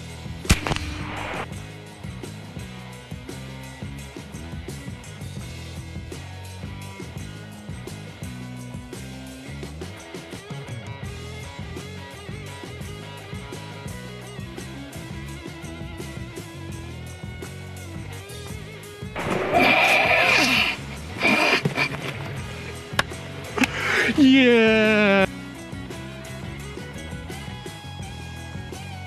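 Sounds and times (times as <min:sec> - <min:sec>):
background music: 0:00.0 - 0:29.0
air rifle shot: 0:00.5 - 0:01.5.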